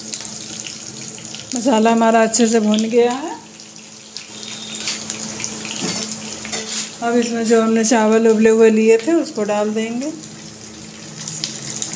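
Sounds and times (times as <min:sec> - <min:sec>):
spices sizzling in hot oil: 0:00.0 - 0:11.9.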